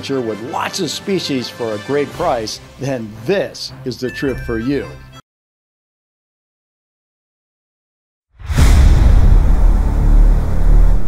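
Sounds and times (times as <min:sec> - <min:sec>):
deep cinematic rumble: 0:08.4 - 0:11.0.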